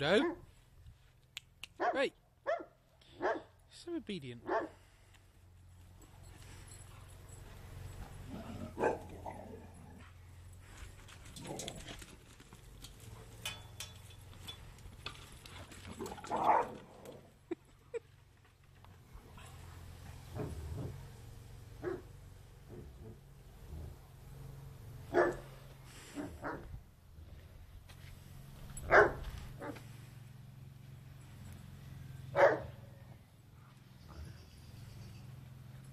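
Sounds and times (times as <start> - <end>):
dogs barking: 1.8 - 3.6, 4.4 - 4.8, 8.2 - 9.6, 16.2 - 16.9, 21.8 - 23.2, 25.1 - 26.7, 28.8 - 29.8, 32.3 - 32.9.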